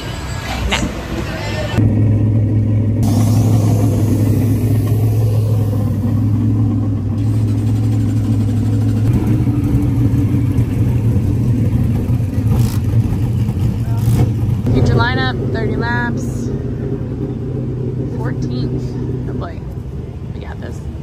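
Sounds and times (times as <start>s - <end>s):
race car engine idling: 1.8s - 21.0s.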